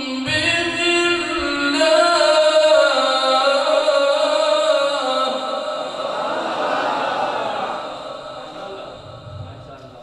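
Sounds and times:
man chanting melodically: 0.0s - 6.5s, 7.5s - 10.0s.

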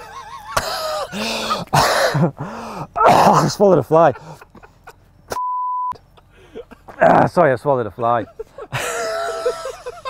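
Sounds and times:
censor bleep: 5.3s - 6.0s.

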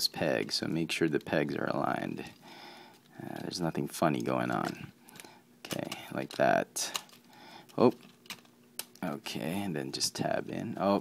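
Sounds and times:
hard plastic parts clicking: 4.1s - 9.0s.

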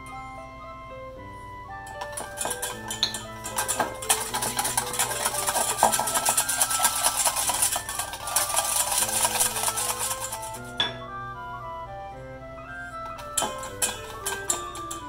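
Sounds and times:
background music: 0.0s - 15.0s
whisk clinking in metal bowl: 1.9s - 10.9s, 13.0s - 15.0s.

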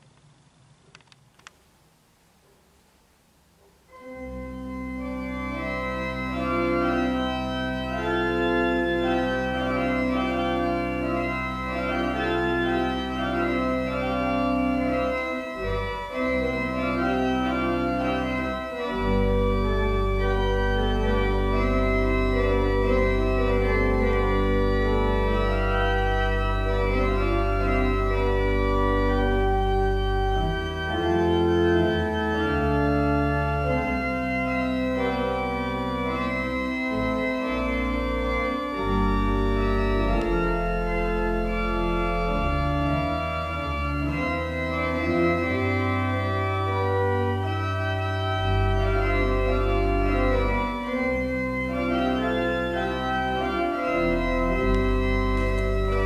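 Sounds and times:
church organ playing chords: 3.9s - 56.0s.

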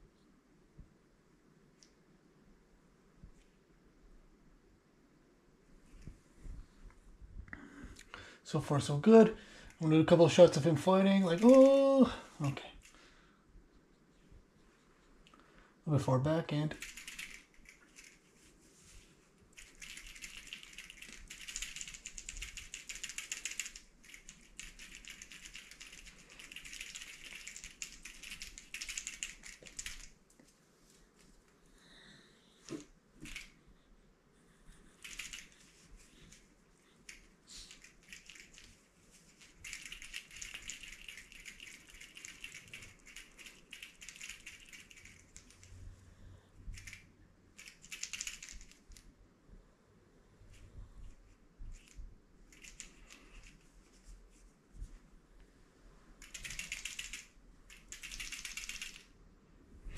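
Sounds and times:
cloth rustling and scratching: 17.6s - 21.0s, 50.5s - 55.1s.

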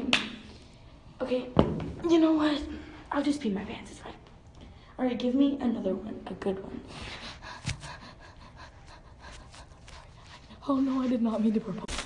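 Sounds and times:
faint breathing: 4.5s - 5.0s, 6.8s - 10.7s.

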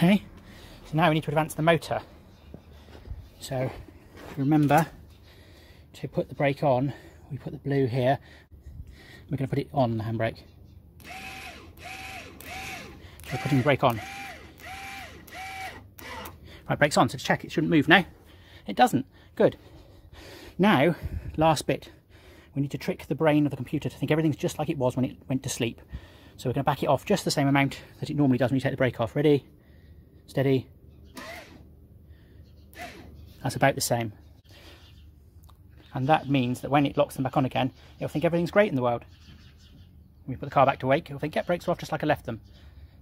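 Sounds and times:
brake caliper motor whirring: 11.0s - 16.4s.

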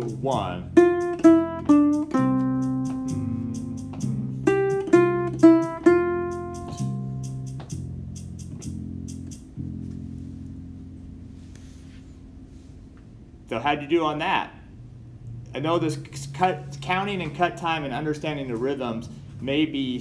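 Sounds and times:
ukulele picking melody notes: 0.0s - 11.8s
slow backing track: 0.0s - 20.0s.

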